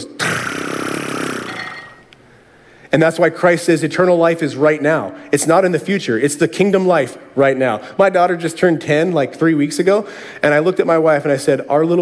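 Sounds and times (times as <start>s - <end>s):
man making buzzing whoosh with mouth: 0.0s - 1.9s.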